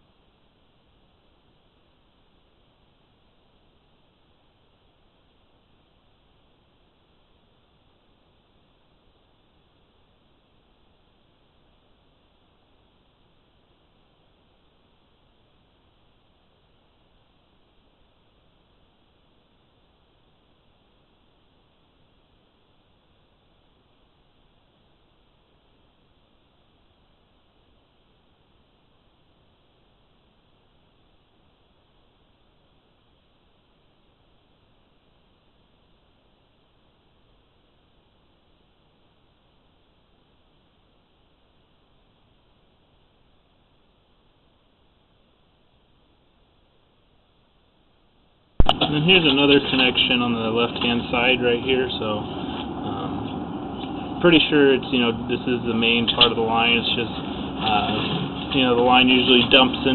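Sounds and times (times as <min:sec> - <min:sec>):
faint steady hiss: 0:00.0 - 0:59.9.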